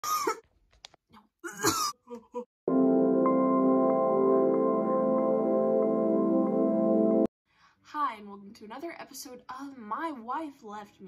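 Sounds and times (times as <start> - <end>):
girl coughing: 0.0 - 0.4, 1.4 - 2.1.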